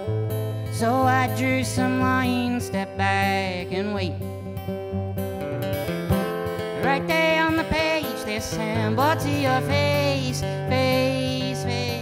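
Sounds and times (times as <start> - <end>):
acoustic guitar chords: 0.0 - 12.0
person singing: 0.6 - 4.5, 6.6 - 12.0.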